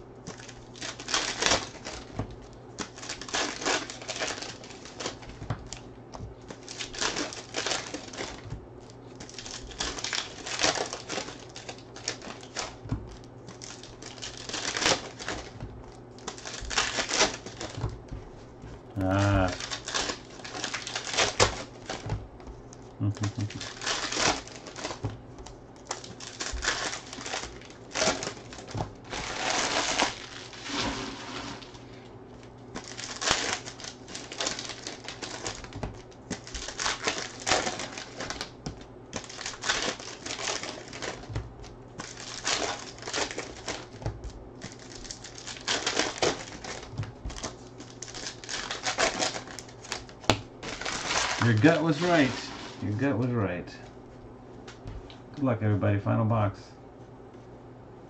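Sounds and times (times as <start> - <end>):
foil wrappers crinkling and tearing: 0.2 - 53.3.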